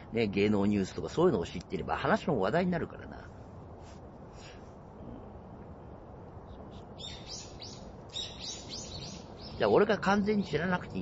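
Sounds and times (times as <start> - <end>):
low outdoor background hum: 0.0 - 11.0
bird chirping: 6.4 - 10.6.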